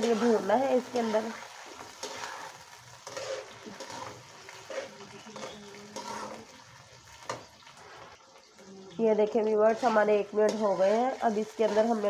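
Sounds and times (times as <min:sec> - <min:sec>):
metal spatula scraping and knocking pan: 0:00.0 - 0:06.4, 0:09.3 - 0:12.0
vegetables sizzling in hot oil: 0:00.0 - 0:12.0.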